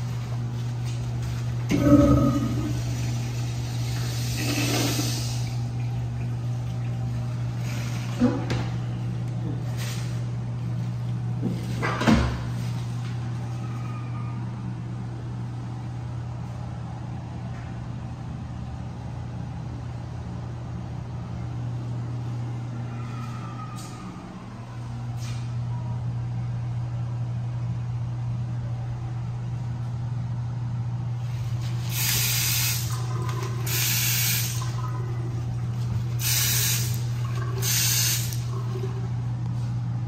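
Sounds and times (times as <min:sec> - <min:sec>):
low hum: 0:00.0 - 0:09.7
low mechanical hum: 0:00.0 - 0:40.0.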